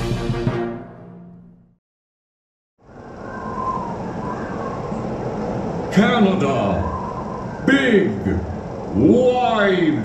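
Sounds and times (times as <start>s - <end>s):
steady rushing rumbling noise: 2.8s - 10.0s.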